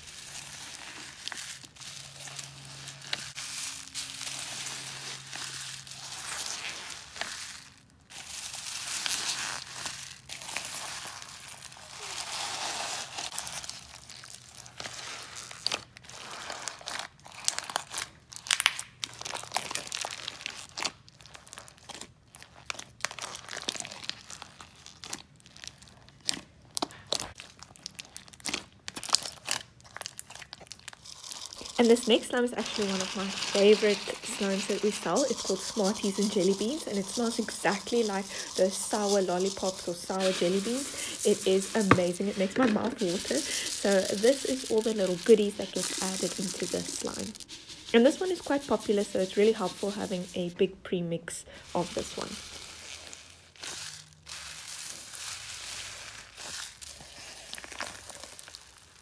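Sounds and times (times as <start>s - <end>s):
slime crinkling and crackling: 0.0s - 50.8s, 51.4s - 59.0s.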